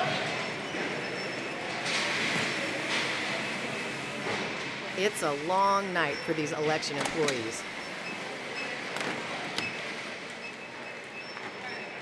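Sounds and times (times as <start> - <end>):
large hall background noise: 0.0 - 12.0.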